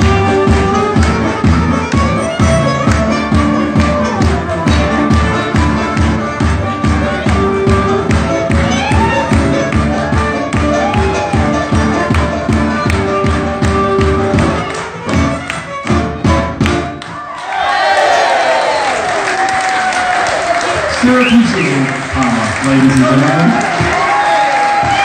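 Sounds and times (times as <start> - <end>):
band playing violin over beat: 0.0 - 17.1
audience cheering and applauding: 2.4 - 15.7, 16.6 - 25.0.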